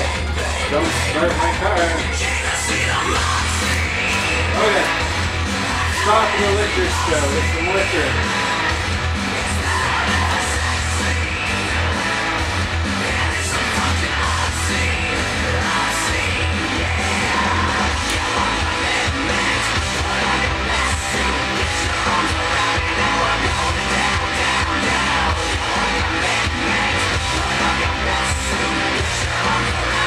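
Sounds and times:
loud rock music with singing: 0:00.0 - 0:30.0.

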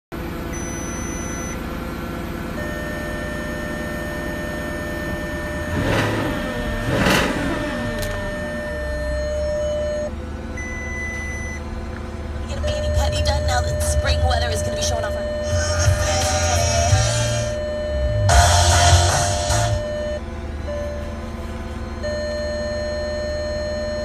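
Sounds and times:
car engine idling and revving: 0:00.1 - 0:24.0
thin steady beep: 0:00.5 - 0:01.6, 0:02.6 - 0:11.6, 0:12.5 - 0:24.0.

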